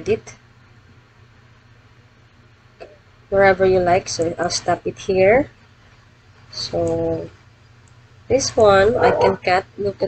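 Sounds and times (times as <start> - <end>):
faint background hiss: 0.0 - 10.0
low steady hum: 0.0 - 10.0.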